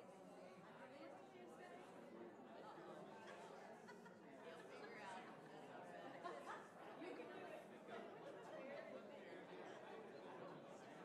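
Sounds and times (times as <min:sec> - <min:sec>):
faint chatter of many people: 0:00.0 - 0:11.0.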